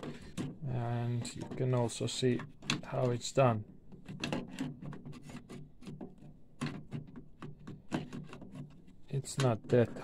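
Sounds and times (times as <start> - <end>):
plastic parts clicking and rubbing: 0.0 - 10.0.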